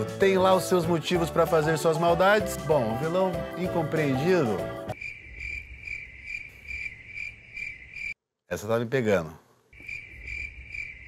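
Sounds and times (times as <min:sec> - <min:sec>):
cricket chirping: 0:04.9 - 0:08.2, 0:09.7 - 0:11.0.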